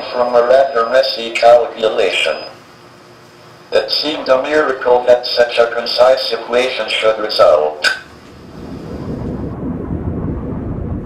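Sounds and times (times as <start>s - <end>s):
deep low rumble: 8.1s - 11.0s.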